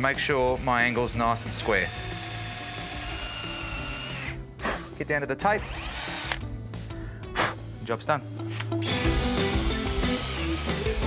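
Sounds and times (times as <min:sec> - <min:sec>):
cordless drill boring into wood: 0:00.6 - 0:04.4, 0:05.6 - 0:06.4, 0:08.9 - 0:11.0.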